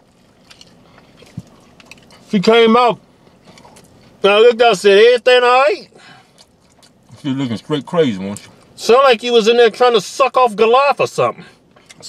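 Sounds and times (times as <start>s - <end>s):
person chewing food: 0.0s - 2.3s, 3.2s - 4.2s, 6.2s - 7.3s.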